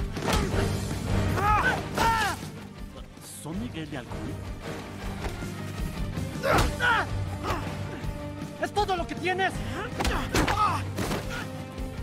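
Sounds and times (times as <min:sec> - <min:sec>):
film soundtrack music: 0:00.0 - 0:12.0
fighters yelling: 0:06.4 - 0:08.0.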